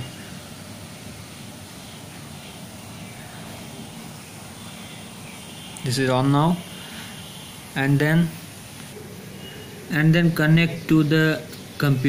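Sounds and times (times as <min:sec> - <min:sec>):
low hiss and rumble: 0:00.0 - 0:12.0.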